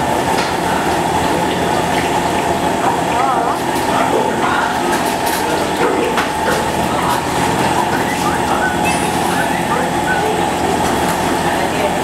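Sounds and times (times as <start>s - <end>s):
machine mechanical hum: 0.0s - 12.0s.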